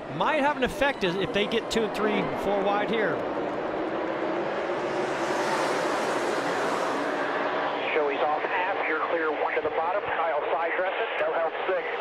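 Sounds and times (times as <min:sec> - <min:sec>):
race car engines roaring: 0:00.0 - 0:11.3.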